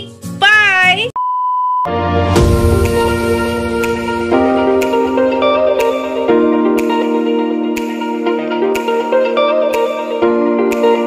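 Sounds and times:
music: 0.0s - 1.1s, 1.9s - 11.0s.

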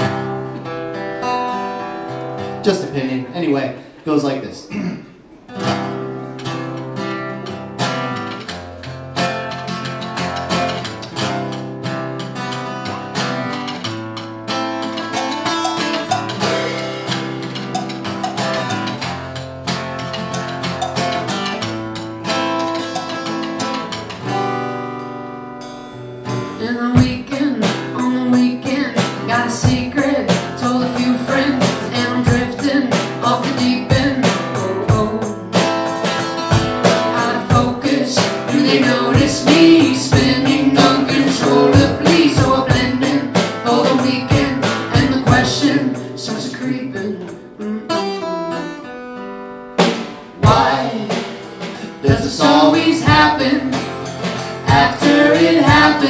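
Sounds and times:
acoustic guitar picking and strumming: 0.0s - 4.1s, 4.7s - 56.0s
bucket drum thumps: 54.2s - 56.0s.

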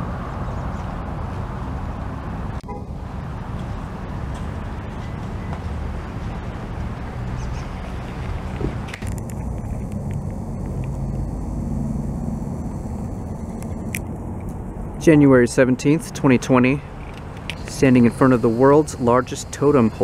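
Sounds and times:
road traffic rumble: 0.0s - 20.0s
traffic hiss: 0.0s - 20.0s.

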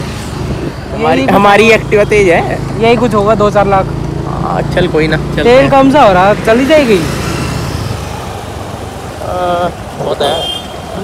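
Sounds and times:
road noise: 0.0s - 11.0s.

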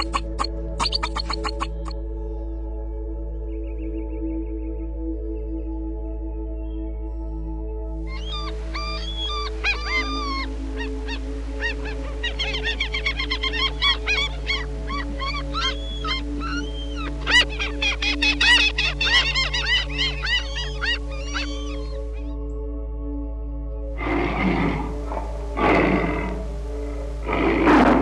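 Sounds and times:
gulls calling: 0.0s - 1.9s, 8.1s - 22.5s, 24.0s - 28.0s
ambient music: 0.0s - 28.0s.

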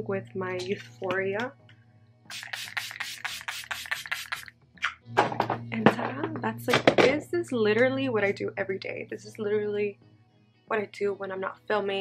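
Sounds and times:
pump spray bottle hissing: 2.3s - 4.5s.

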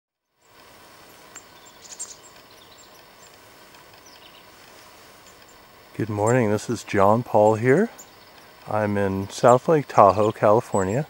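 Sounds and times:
steady low hiss: 0.2s - 11.0s
high bird chirps: 1.2s - 3.4s, 4.0s - 4.5s, 7.9s - 10.4s.

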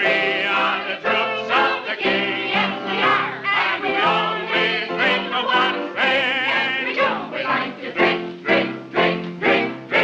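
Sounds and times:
mixed chorus singing: 0.0s - 10.0s
musical accompaniment: 0.0s - 10.0s
man singing with vibrato: 4.8s - 7.0s.

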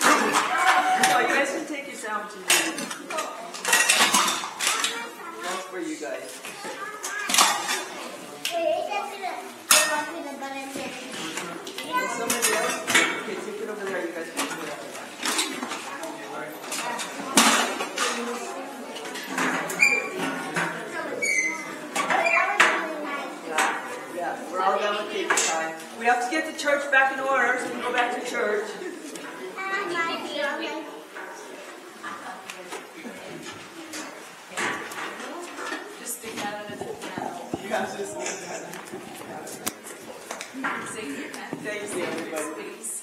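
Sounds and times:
children chattering: 0.0s - 43.0s.

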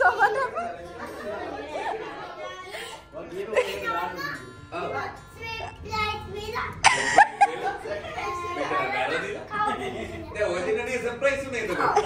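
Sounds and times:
indistinct chatter of people: 0.0s - 12.0s
young child's high voice: 3.8s - 7.1s.

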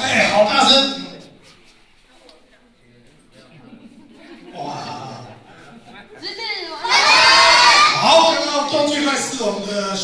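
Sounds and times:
group cheering and shouting: 6.7s - 8.7s.

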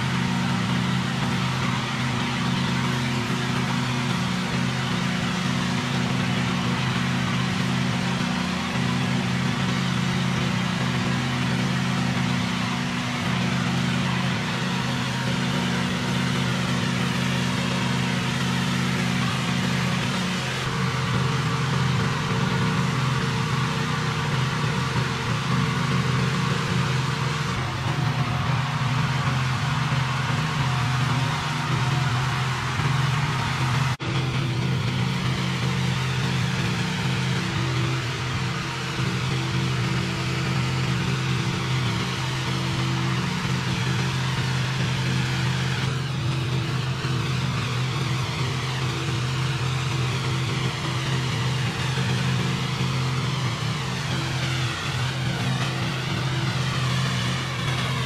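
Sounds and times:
pressure washer engine running: 0.0s - 58.0s
water spray hitting concrete: 0.0s - 58.0s.

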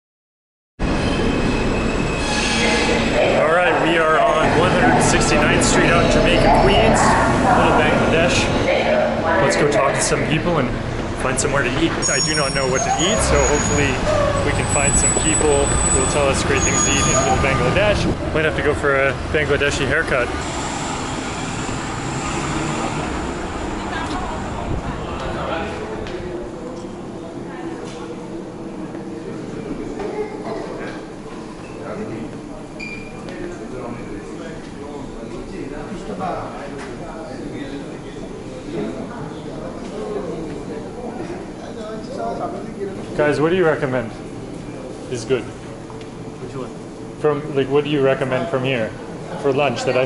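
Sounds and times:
passing traffic: 0.8s - 30.0s
indistinct voices of passers-by: 0.8s - 50.0s
subway train rumbling: 0.8s - 50.0s.

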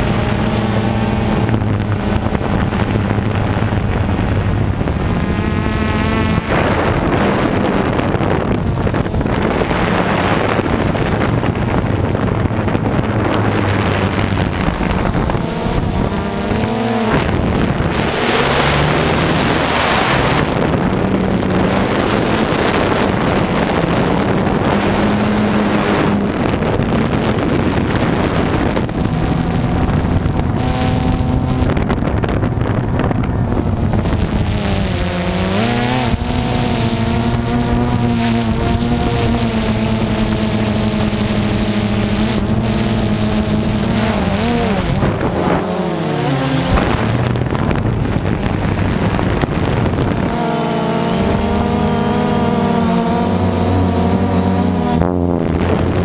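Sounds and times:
drone propellers buzzing: 0.0s - 56.0s
wind on microphone: 0.0s - 56.0s.

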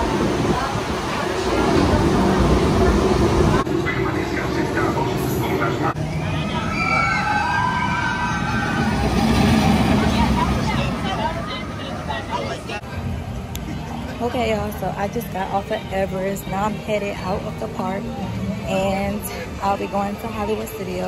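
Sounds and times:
roller coaster rumbling: 0.0s - 16.0s
riders screaming: 6.4s - 9.4s.

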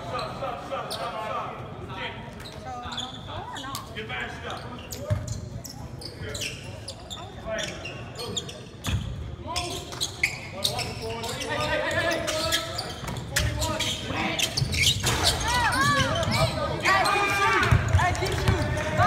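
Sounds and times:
players calling and shouting: 0.0s - 19.0s.

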